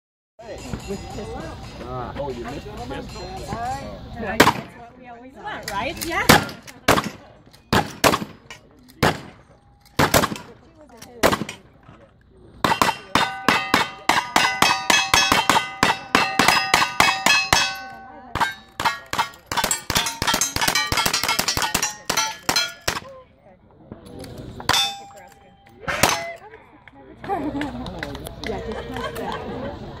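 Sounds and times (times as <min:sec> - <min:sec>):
gunshots: 0:04.4 - 0:04.8, 0:06.3 - 0:09.4, 0:10.0 - 0:10.6, 0:11.2 - 0:11.7, 0:12.6 - 0:23.1
steel plates clanging: 0:12.7 - 0:23.1, 0:24.7 - 0:26.4.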